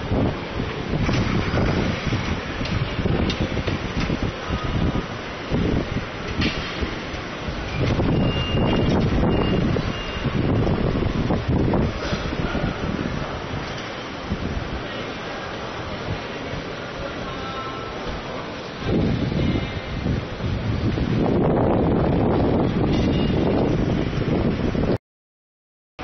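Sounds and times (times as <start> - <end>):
wind buffeting microphone: 0.0 - 14.8, 18.1 - 25.0
street traffic noise: 0.0 - 25.0.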